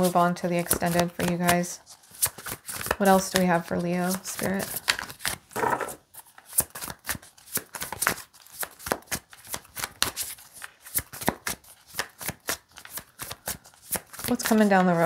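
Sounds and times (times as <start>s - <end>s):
cards being shuffled: 0.0s - 15.0s.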